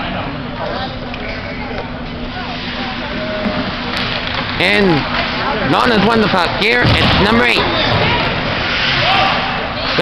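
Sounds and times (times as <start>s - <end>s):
arena noise skating and crowd: 0.0s - 10.0s.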